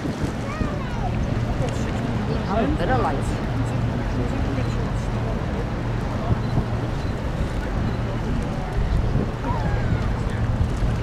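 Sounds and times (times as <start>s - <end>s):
low boat engine drone: 0.0s - 11.0s
wind buffeting microphone: 0.0s - 11.0s.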